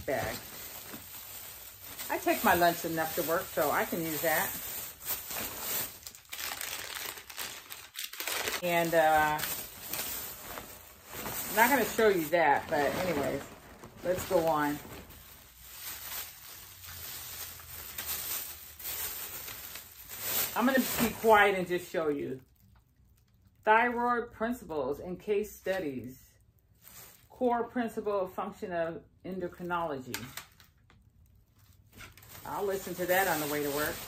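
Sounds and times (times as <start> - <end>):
plastic bag rustling: 0.0 - 21.9, 26.7 - 27.4, 31.5 - 34.0.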